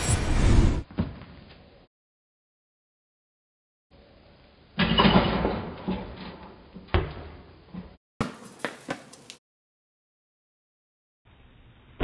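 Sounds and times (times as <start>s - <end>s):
basketball rim and backboard clanging: 4.8s - 7.4s.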